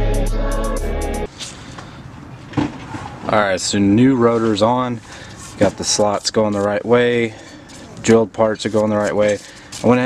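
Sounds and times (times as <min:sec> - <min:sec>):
background music: 0:00.0 - 0:01.3.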